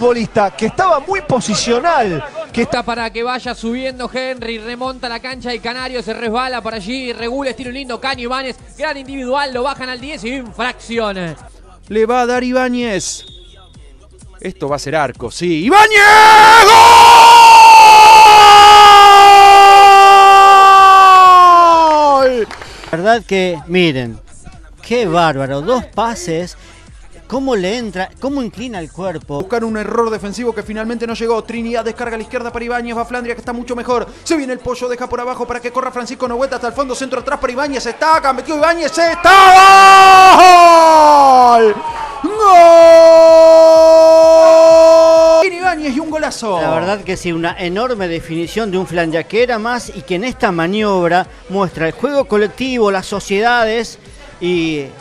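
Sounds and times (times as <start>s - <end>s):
commentator speaking: 0.0s - 13.3s, 22.1s - 39.6s, 45.3s - 55.0s
commentator long goal shout: 15.6s - 22.4s, 38.7s - 45.5s
commentator's long goal cry: 39.0s - 45.5s.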